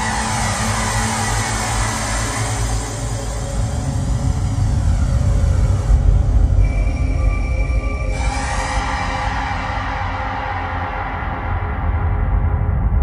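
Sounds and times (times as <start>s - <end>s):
hissing noise with sweeping whoosh: 0.0s - 6.6s
steady low bass: 0.0s - 13.0s.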